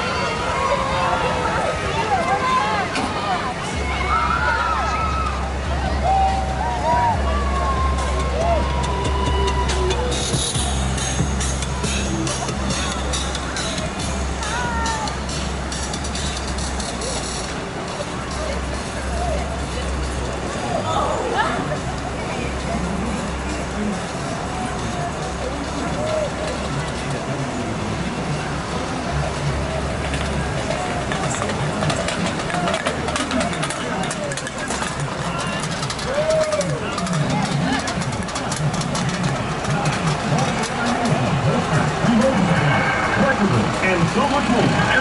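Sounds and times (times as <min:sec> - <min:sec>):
vehicle engines rumbling: 0:00.0 - 0:45.0
voices: 0:00.0 - 0:45.0
people calling out: 0:11.6 - 0:15.2.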